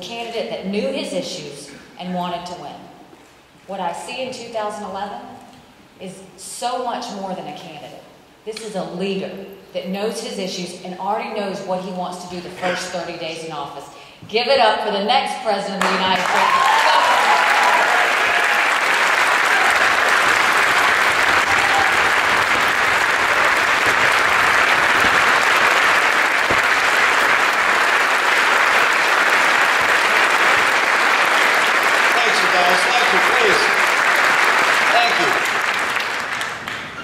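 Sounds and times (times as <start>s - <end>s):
large audience applauding: 15.8s - 37.0s.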